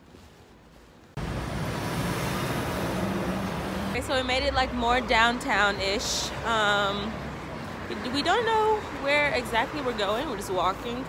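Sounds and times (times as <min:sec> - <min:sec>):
city road traffic: 0:00.0 - 0:11.0.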